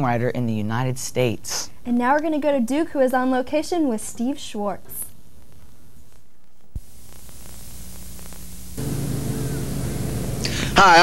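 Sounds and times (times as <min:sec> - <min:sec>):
electrical hum: 0:00.0 - 0:11.0
tape hiss: 0:00.0 - 0:11.0.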